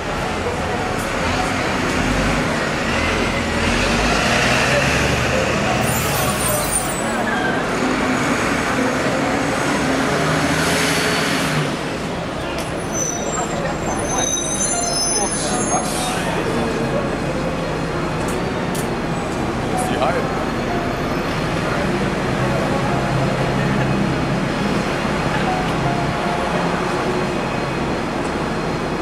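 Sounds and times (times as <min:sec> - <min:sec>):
buses and vehicles running: 0:00.0 - 0:29.0
crowd chatter: 0:00.0 - 0:29.0.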